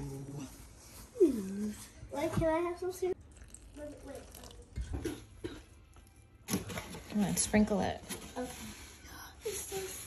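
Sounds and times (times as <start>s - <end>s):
water pouring into flour: 3.2s - 4.8s.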